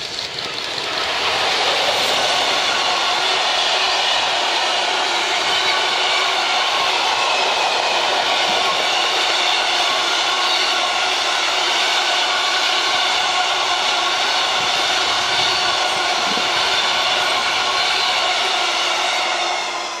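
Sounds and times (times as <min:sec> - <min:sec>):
freight train wheels on rails: 0:00.0 - 0:20.0.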